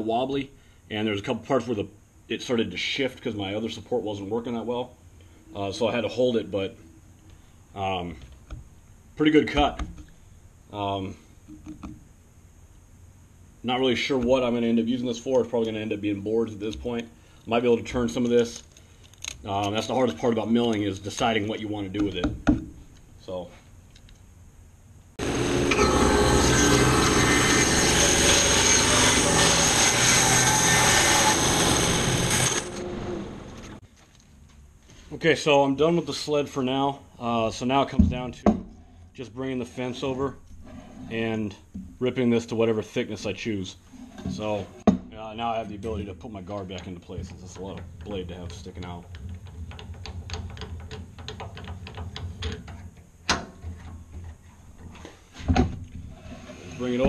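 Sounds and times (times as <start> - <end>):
steady low hum: 0.0 - 57.0
bandsaw cutting a log: 25.2 - 33.1
motor hum: 25.2 - 33.8
metallic clicking and rattling: 46.7 - 54.3.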